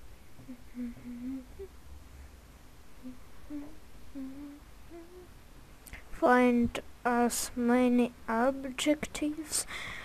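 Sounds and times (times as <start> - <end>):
person humming: 0.4 - 1.8, 3.0 - 5.4.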